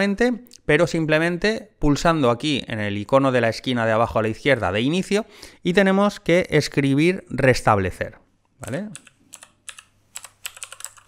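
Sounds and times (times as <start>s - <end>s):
typing on keyboard: 8.6s - 11.0s.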